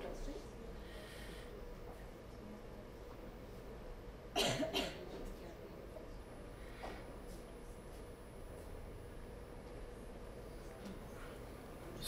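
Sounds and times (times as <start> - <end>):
low room hum: 0.0 - 12.0
person coughing into microphone: 4.4 - 5.2.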